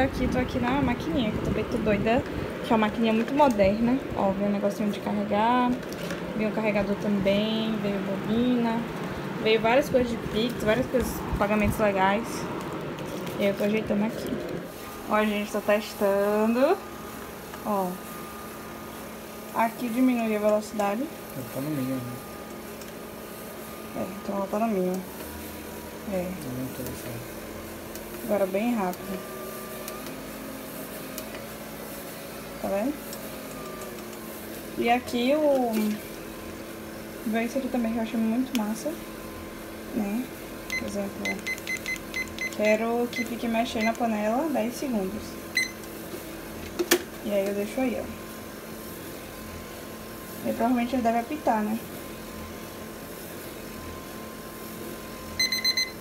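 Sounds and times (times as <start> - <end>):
stirring pot motor humming: 0.0 - 56.0
kitchen timer beeping: 40.7 - 44.1, 45.5 - 45.8, 55.4 - 56.0.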